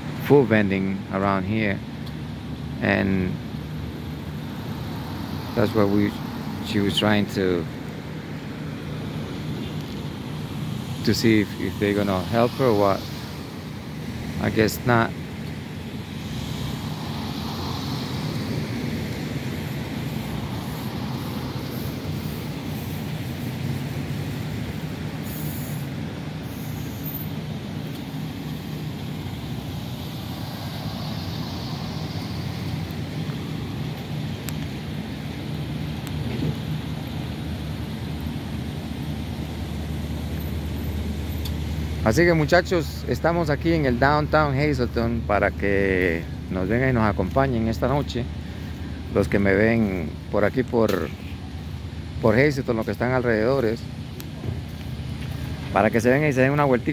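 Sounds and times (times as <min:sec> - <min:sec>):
vehicles driving past: 0:00.0 - 0:56.9.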